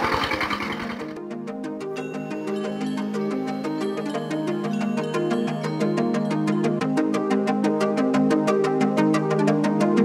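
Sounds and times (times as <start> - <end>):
diesel tractor engine: 0.0 - 1.2
plucked background music: 0.5 - 10.0.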